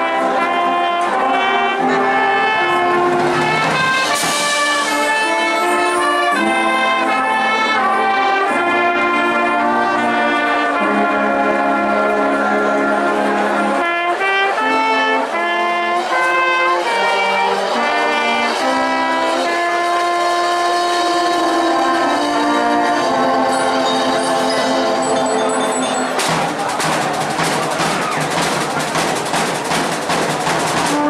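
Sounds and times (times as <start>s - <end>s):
brass section playing chords: 0.0s - 29.4s, 30.8s - 31.0s.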